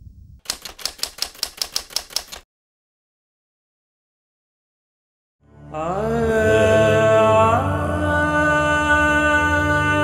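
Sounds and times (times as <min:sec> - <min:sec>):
typewriter key clicks: 0:00.4 - 0:02.4.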